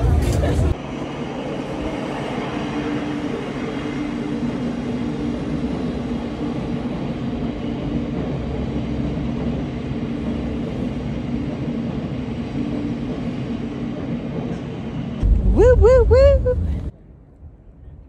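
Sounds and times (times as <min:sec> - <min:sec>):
passenger train running past: 0:00.0 - 0:18.0.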